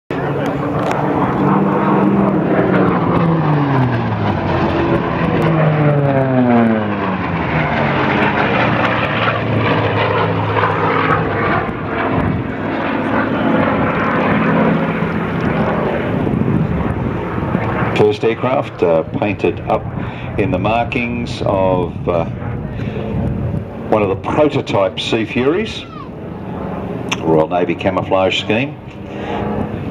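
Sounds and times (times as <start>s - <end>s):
propeller planes diving past: 0.1s - 29.9s.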